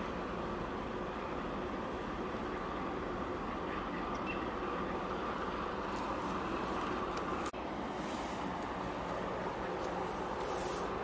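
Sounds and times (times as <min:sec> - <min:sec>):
outdoor background rumble: 0:00.0 - 0:11.0.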